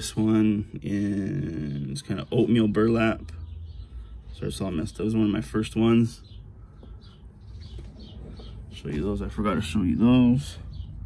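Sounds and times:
faint bird chirps: 1.2s - 11.0s.

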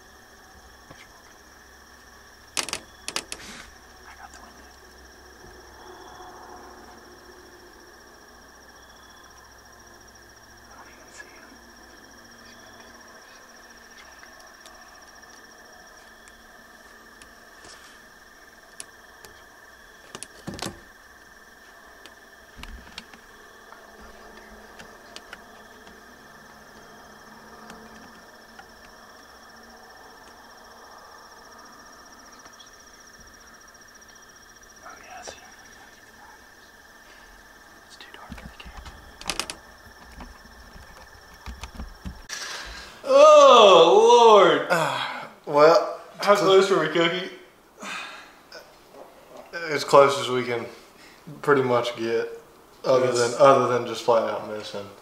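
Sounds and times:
insects trilling: 0.0s - 55.0s.

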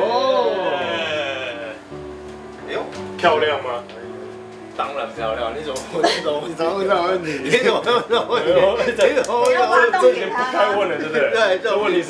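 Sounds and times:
wavering vocal exclamation: 0.0s - 1.8s
background music with held notes: 0.0s - 12.0s.

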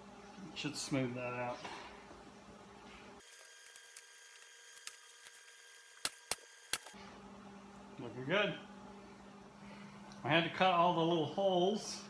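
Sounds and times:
pneumatic staple gun snaps: 6.0s - 7.0s.

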